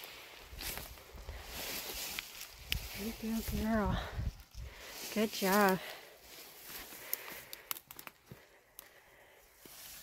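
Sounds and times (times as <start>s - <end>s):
footsteps through dry weeds: 0.0s - 10.0s
light snaps and ticks: 2.0s - 2.9s, 6.7s - 9.0s.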